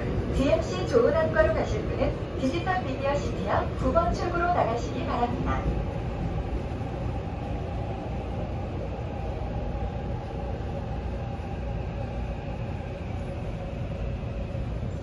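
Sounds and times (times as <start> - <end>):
subway train rumble: 0.0 - 15.0.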